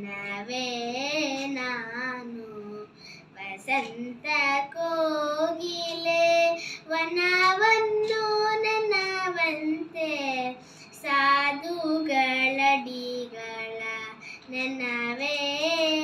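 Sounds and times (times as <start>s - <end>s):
girl singing unaccompanied: 0.0s - 16.0s.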